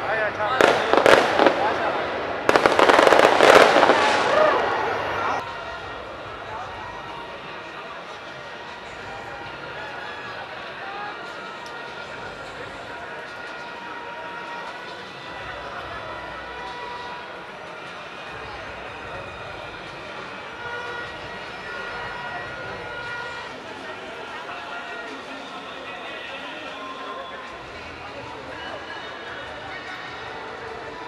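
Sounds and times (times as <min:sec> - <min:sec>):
crowd talking: 0:00.0 - 0:31.0.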